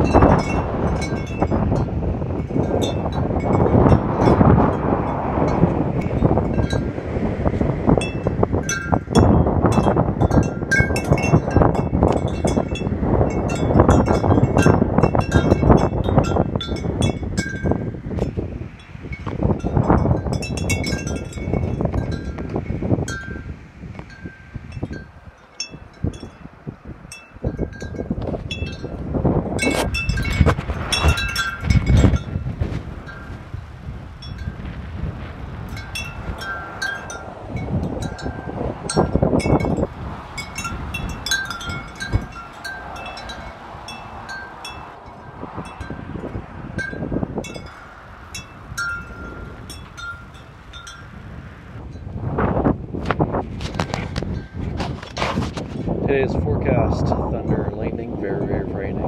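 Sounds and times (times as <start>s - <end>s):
wind chimes ringing: 0.0s - 4.9s, 5.5s - 6.9s, 7.9s - 17.9s, 18.8s - 23.5s, 24.1s - 29.0s, 29.6s - 32.4s, 34.2s - 34.6s, 35.7s - 51.3s, 54.3s - 54.7s
wind rumbling on microphone: 0.0s - 59.0s.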